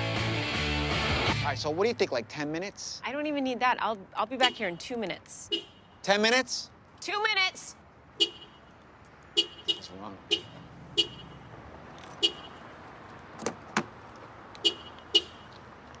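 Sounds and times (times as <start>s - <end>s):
car horn chirping: 4.4s - 6.1s, 8.2s - 8.7s, 9.3s - 11.5s, 12.2s - 12.7s, 14.6s - 15.5s.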